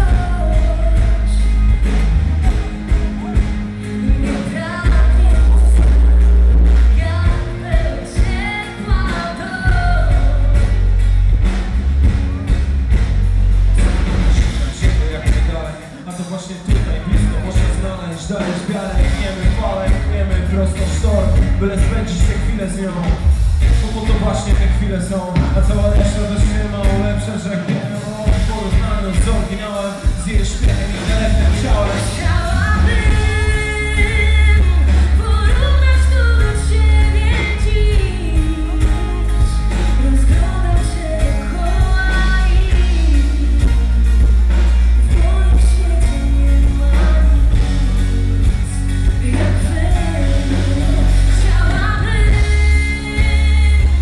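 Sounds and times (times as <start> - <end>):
woman singing: 0.0 - 2.0, 3.8 - 10.9, 31.6 - 44.2, 44.9 - 54.0
live pop band: 0.0 - 54.0.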